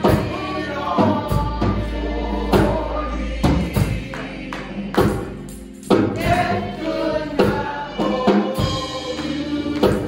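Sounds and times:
choir singing worship song: 0:00.0 - 0:10.0
live band playing: 0:00.0 - 0:10.0.

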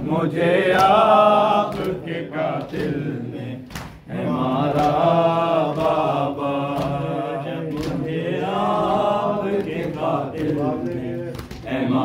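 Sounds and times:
men chanting a lament: 0:00.0 - 0:12.0
chest-beating slaps: 0:00.7 - 0:03.0, 0:03.6 - 0:11.8.

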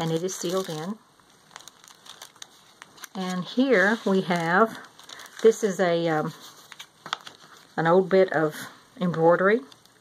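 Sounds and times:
paper rustling and crinkling: 0:00.0 - 0:07.8.

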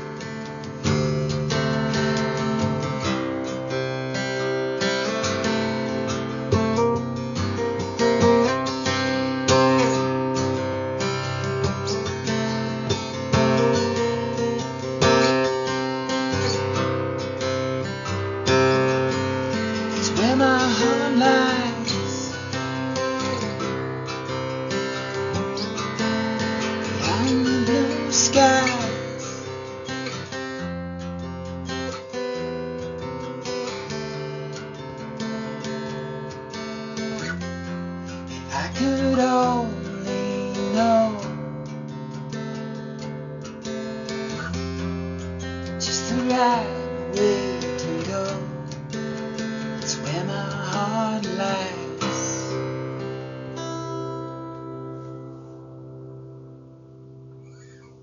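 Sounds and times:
guitar playing chords and melody: 0:00.0 - 0:58.0.

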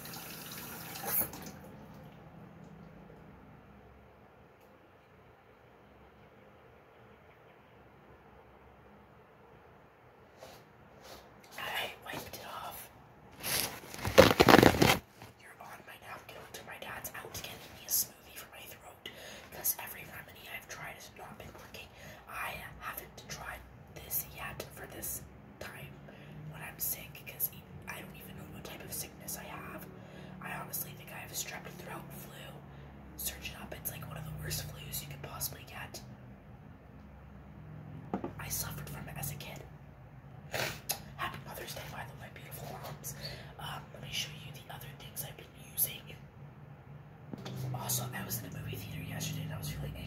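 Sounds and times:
woman whispering: 0:11.5 - 0:13.0, 0:15.4 - 0:36.1, 0:38.3 - 0:39.7, 0:41.2 - 0:46.3, 0:47.6 - 0:50.0.

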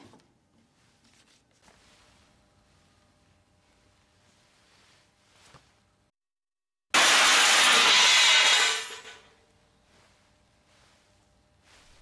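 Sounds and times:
loud crash: 0:06.9 - 0:09.2.

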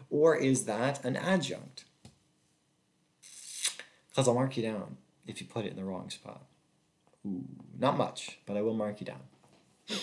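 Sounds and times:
soft hiss: 0:00.0 - 0:10.0.

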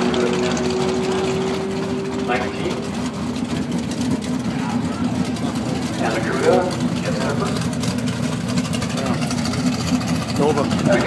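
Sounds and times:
drag-race car engines rumbling: 0:00.0 - 0:11.0
voices: 0:00.0 - 0:11.0.

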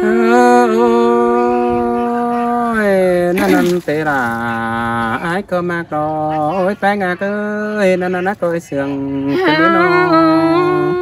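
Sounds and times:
singer holding long vowel: 0:00.0 - 0:02.7, 0:09.3 - 0:11.0.

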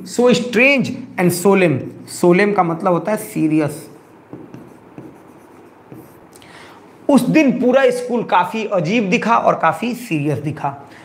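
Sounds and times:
stylus rubbing on screen: 0:03.4 - 0:06.4
stylus tapping on screen: 0:04.2 - 0:06.4.

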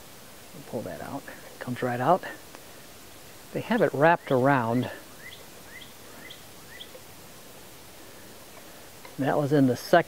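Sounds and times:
faint outdoor background noise: 0:00.0 - 0:10.0
small bird chirping: 0:03.8 - 0:07.2.

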